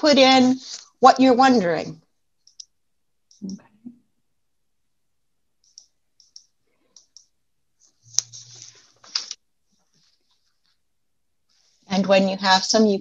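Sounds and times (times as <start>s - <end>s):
computer mouse clicks: 2.4s - 3.6s, 5.6s - 7.3s.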